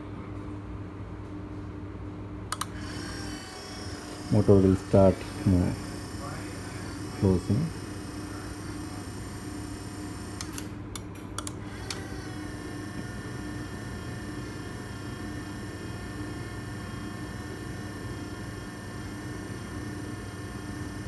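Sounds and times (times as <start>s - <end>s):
sharp clicks: 2.5s - 2.7s, 10.4s - 12.0s
gate motor humming: 2.5s - 21.0s
high motor whine: 2.6s - 10.8s, 11.6s - 21.0s.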